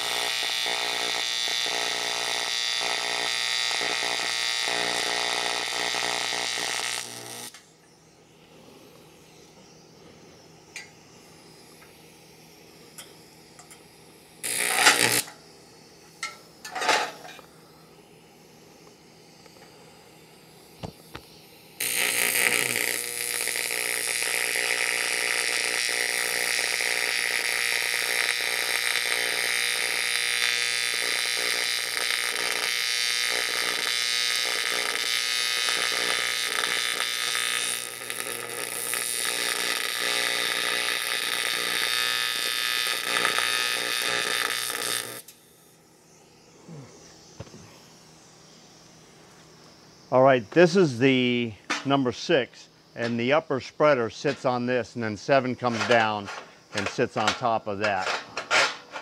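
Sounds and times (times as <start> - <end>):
welding arc hiss and buzz: 0.0 - 59.0.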